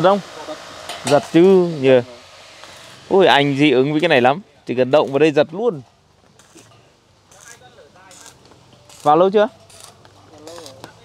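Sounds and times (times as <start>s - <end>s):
arc welder crackle and hiss: 0.0s - 11.0s.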